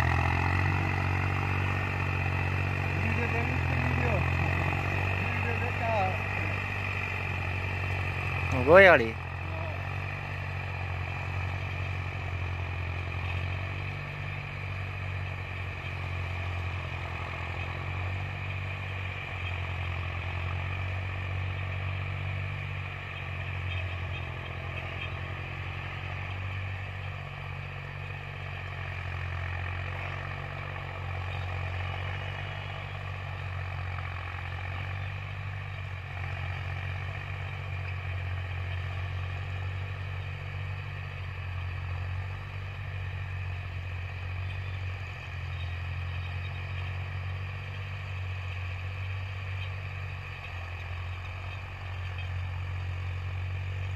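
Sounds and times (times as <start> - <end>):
tractor engine running under load: 0.0 - 53.9.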